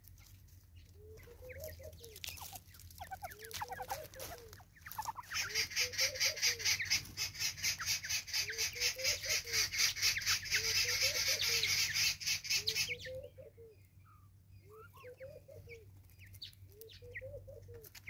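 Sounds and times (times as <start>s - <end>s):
harsh rhythmic bird call: 1.2s - 13.7s.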